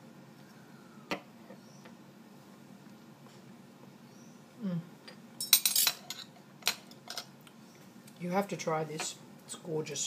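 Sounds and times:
cutlery clinking on a ceramic plate: 0:05.4 - 0:07.3.

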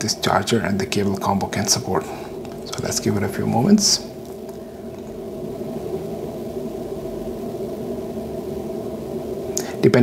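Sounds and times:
machine humming and whirring: 0:00.0 - 0:10.0.

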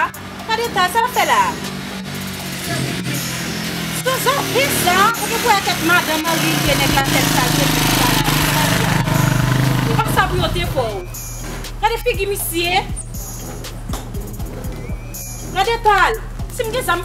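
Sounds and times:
instrumental music with bass: 0:00.0 - 0:17.0.

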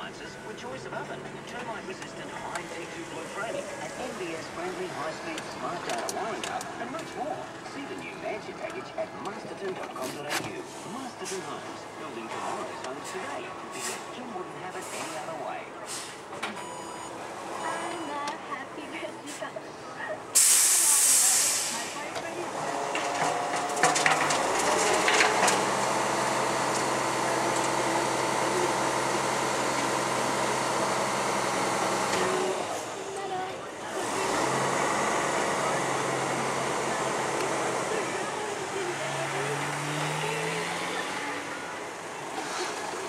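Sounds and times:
diesel engine running: 0:00.0 - 0:43.0
air brakes hissing: 0:13.7 - 0:14.1, 0:14.8 - 0:16.3, 0:20.3 - 0:22.0.

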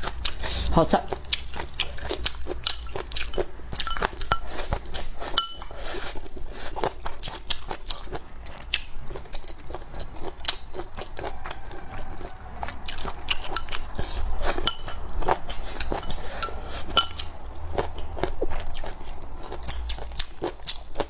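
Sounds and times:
person chewing and crunching: 0:00.0 - 0:21.0.

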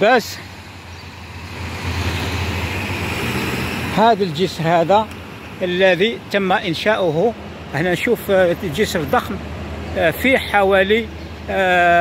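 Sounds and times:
passing car engine and tyres: 0:00.0 - 0:12.0.

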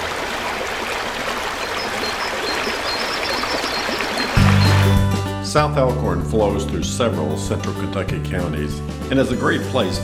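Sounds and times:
creek water rushing over rocks: 0:00.0 - 0:05.0.

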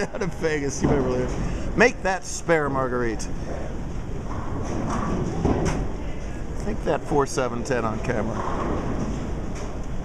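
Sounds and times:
bowling balls rolling on lanes: 0:00.1 - 0:01.5, 0:03.8 - 0:06.0, 0:07.0 - 0:09.8.

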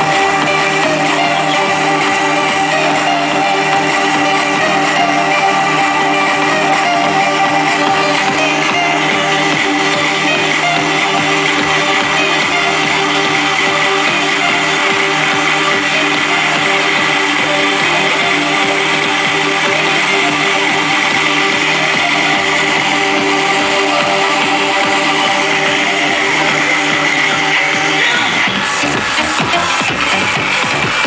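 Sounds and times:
loud electronic dance music: 0:00.0 - 0:31.0.

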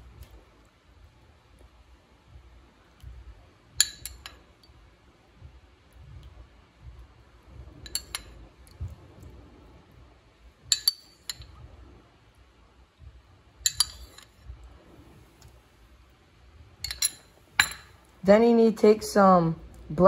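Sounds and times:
metal spoon clinking on ceramic: 0:03.8 - 0:04.4, 0:07.9 - 0:08.3, 0:10.7 - 0:11.5, 0:13.7 - 0:14.3, 0:16.8 - 0:18.0.

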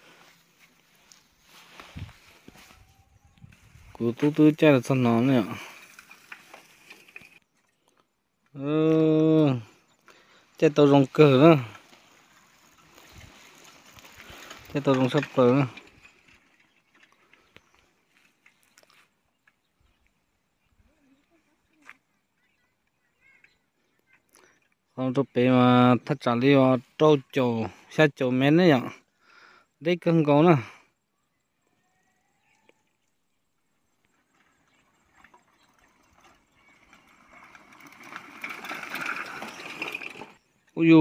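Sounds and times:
faint outdoor ambience: 0:00.0 - 0:41.0
bicycle rattling and clicking: 0:04.7 - 0:07.5, 0:10.8 - 0:18.7, 0:34.2 - 0:40.4.

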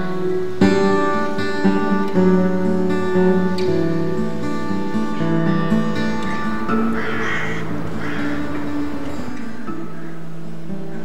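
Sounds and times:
soft acoustic guitar music: 0:00.0 - 0:11.0
harsh caw-like bird calls: 0:06.0 - 0:11.0.

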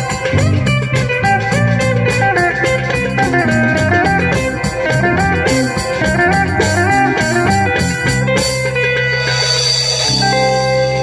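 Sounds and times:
live band sustained chords: 0:00.0 - 0:11.0.

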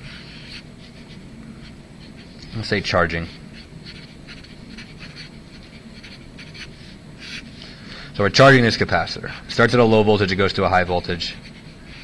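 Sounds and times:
marker rubbing across paper: 0:00.1 - 0:07.5.

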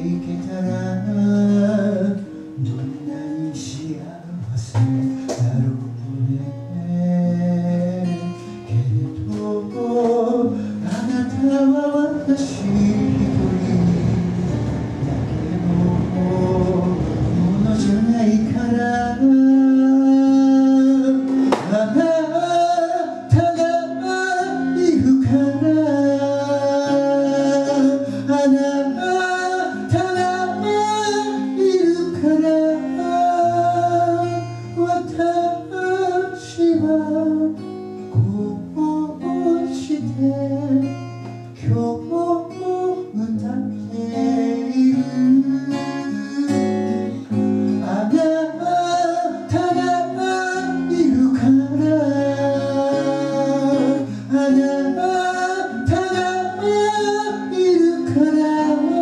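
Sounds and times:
person singing: 0:00.0 - 0:59.0
strummed acoustic guitar: 0:00.0 - 0:59.0.

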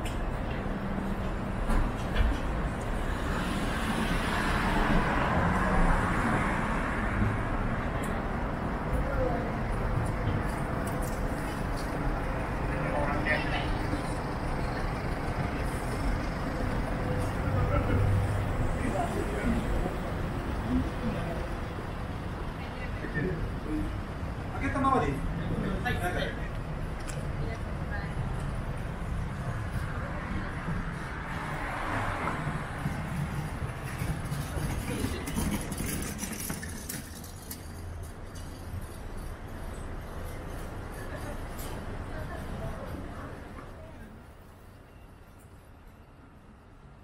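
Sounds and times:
road traffic rumble: 0:00.0 - 0:47.0
passers-by talking: 0:00.1 - 0:45.6.

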